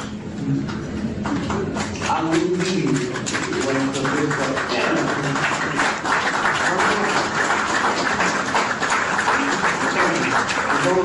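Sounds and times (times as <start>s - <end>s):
audience applauding: 1.2s - 11.0s.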